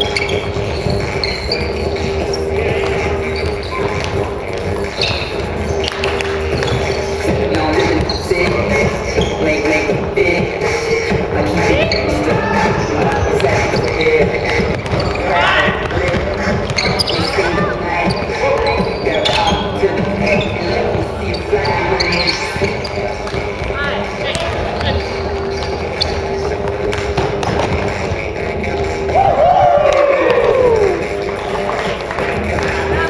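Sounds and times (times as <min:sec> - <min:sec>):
players calling out: 0:00.0 - 0:27.2, 0:27.8 - 0:33.0
shoes on court: 0:00.0 - 0:33.0
basketball bouncing on wooden floor: 0:11.9 - 0:21.1
loud falling shout: 0:29.2 - 0:31.0.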